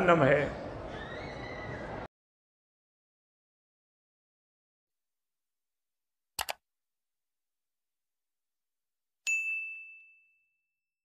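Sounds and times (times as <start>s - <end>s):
high clear bell ding: 9.3s - 10.7s.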